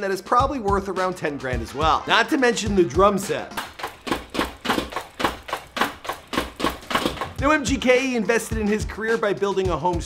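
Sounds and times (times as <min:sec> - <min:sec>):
drum kit steady beat: 0:00.3 - 0:10.0.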